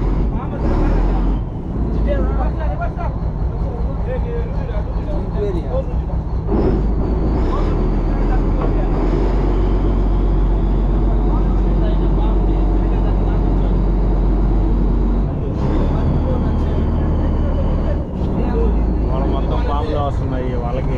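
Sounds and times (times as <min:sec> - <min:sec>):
boat engine humming: 0:00.0 - 0:20.9
men talking: 0:00.0 - 0:20.9.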